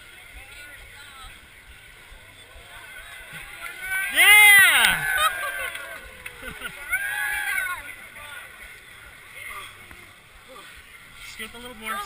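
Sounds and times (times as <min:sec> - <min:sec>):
faint crowd voices: 0:00.0 - 0:12.0.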